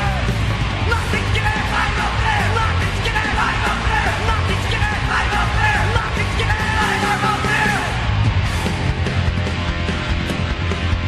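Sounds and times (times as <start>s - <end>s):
shouted vocals: 0.0s - 8.1s
loud punk rock band: 0.0s - 11.0s.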